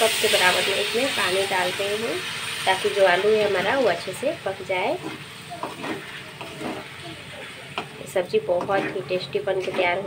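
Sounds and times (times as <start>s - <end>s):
pan sizzling: 0.0s - 10.0s
spatula scraping pan: 0.4s - 10.0s.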